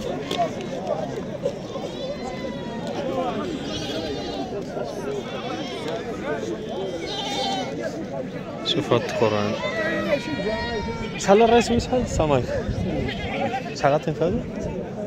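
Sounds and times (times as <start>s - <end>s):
people talking: 0.0s - 15.0s
goats bleating: 3.2s - 6.0s, 6.8s - 7.8s, 12.9s - 13.8s.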